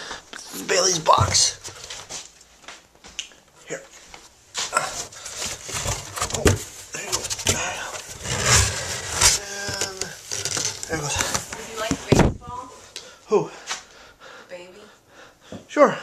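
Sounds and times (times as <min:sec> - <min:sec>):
cardboard box rustling and knocking: 0:05.0 - 0:12.5.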